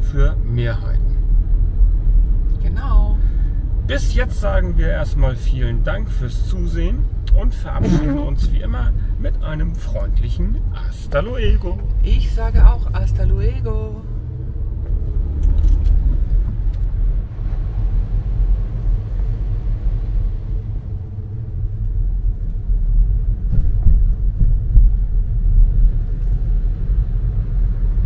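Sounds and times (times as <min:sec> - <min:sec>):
car engine and road rumble: 0:00.0 - 0:28.0.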